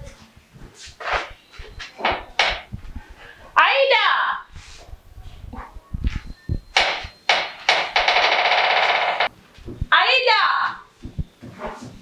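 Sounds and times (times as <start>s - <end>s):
electric doorbell buzzer: 6.8s - 9.3s.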